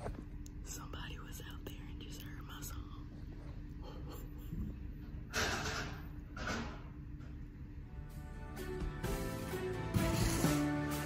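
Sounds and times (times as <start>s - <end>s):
steady low hum: 0.0s - 10.6s.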